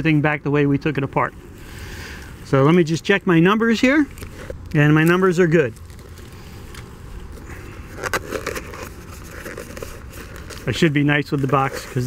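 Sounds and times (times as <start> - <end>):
low background rumble: 0.0 - 12.0
box and plastic bag rustling: 3.9 - 12.0.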